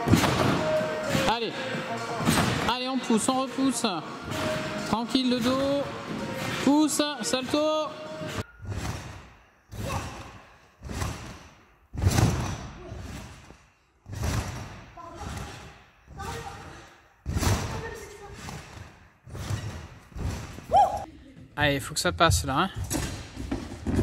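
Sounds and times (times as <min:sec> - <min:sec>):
trampoline thumping: 0:00.0 - 0:01.5, 0:08.6 - 0:21.0.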